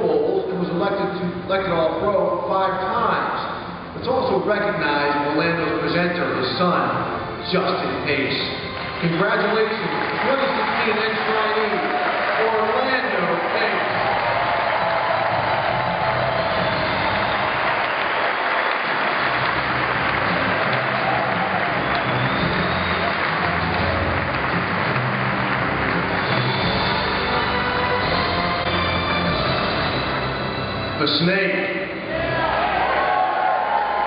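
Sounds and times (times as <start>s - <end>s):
audience applauding: 8.6s - 30.6s, 32.2s - 34.0s.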